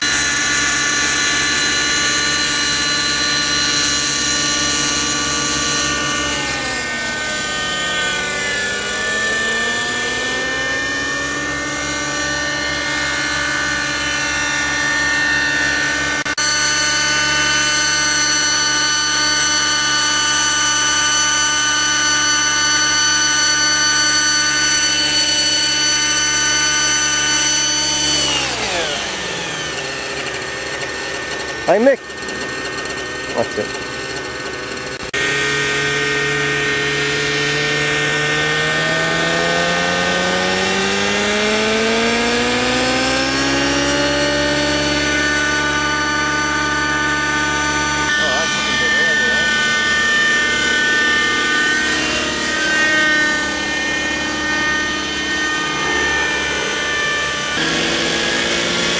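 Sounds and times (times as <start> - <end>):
model helicopter rotor whine: 0.0 - 58.9.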